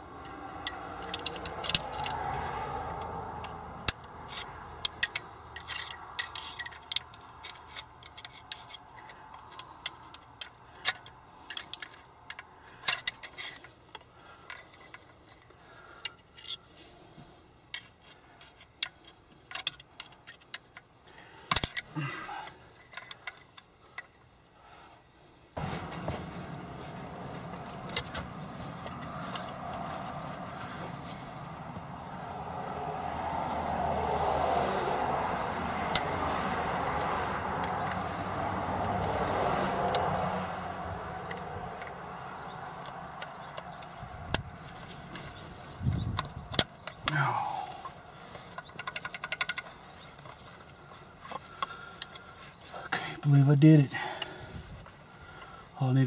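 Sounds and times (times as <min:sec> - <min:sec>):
tools clicking and scraping metal: 0:00.0 - 0:24.3, 0:27.3 - 0:32.2, 0:35.8 - 0:52.8
steady background noise: 0:00.0 - 0:56.0.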